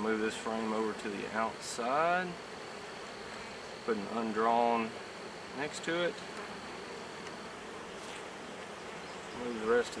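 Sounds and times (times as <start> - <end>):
bees buzzing: 0.0 - 10.0.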